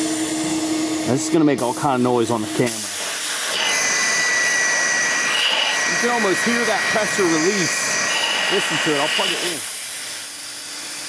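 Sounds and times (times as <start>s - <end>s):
air pump rushing air and whine: 0.0s - 11.0s.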